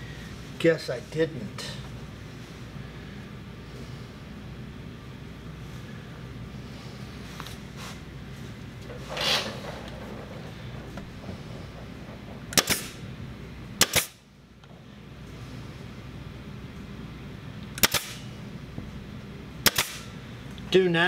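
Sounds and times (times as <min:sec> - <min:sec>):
nail gun firing into wood: 0:12.5 - 0:13.0, 0:13.8 - 0:14.2, 0:17.8 - 0:18.2, 0:19.6 - 0:20.1.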